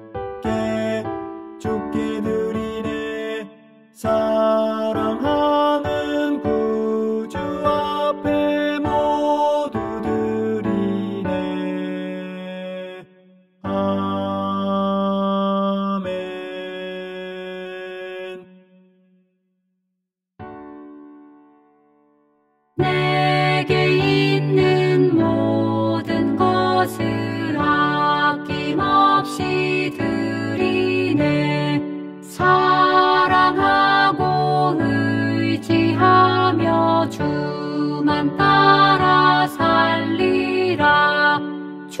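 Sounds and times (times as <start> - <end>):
choir singing held chords: 22.8 - 42.0.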